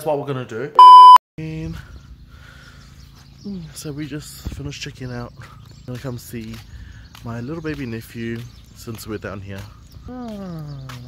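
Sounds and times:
steady test tone beep: 0.8s - 1.2s.

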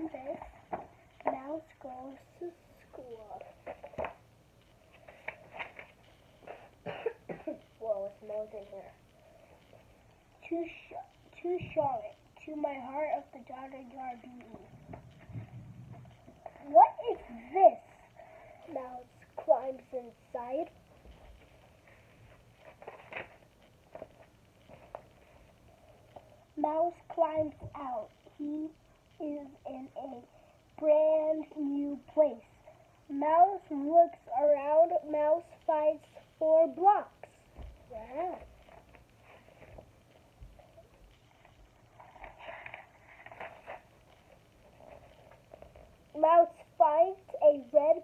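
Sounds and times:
child speaking softly: 1.2s - 3.5s
book pages turning: 3.4s - 4.2s, 4.8s - 6.7s, 21.0s - 26.3s, 38.0s - 40.7s, 41.4s - 46.0s.

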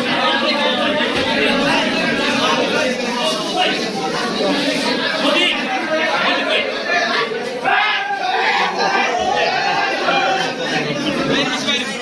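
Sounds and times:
men talking at once: 0.0s - 12.0s.

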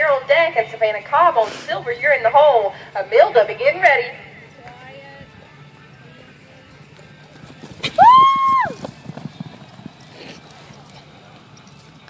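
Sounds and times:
horse hoofbeats on dirt: 0.0s - 12.0s.

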